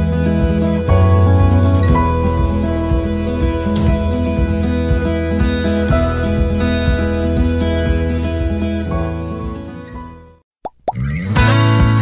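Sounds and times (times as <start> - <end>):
acoustic guitar music: 0.0 - 10.4, 11.0 - 12.0
rising plop sound effects: 10.6 - 11.1.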